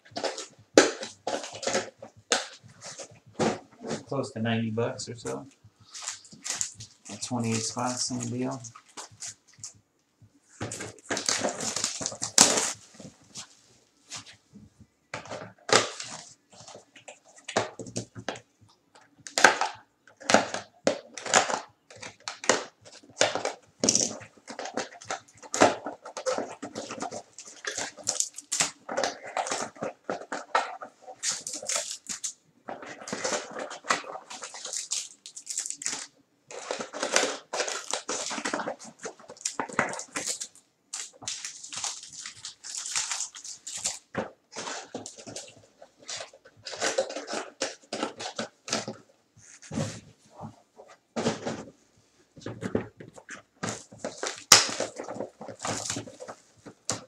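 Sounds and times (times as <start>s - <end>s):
plastic wrapping crinkling: 0.0s - 4.2s, 5.1s - 9.8s, 10.5s - 14.4s, 19.3s - 51.8s, 52.4s - 57.0s.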